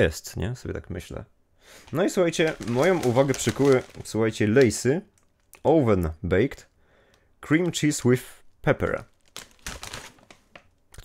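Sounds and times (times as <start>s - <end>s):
crisp packet crinkling: 1.8s - 5.7s, 7.6s - 11.0s.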